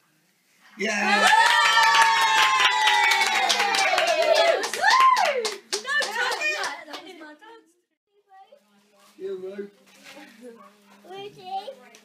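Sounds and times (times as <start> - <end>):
children clapping: 1.1 - 7.2.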